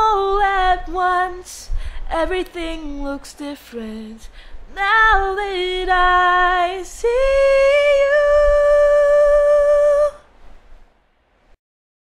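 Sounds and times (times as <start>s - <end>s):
faint hiss: 0.0s - 11.6s.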